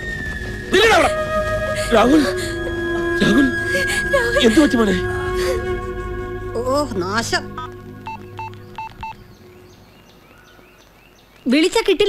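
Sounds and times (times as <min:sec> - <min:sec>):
phone beeps: 0:08.0 - 0:09.2.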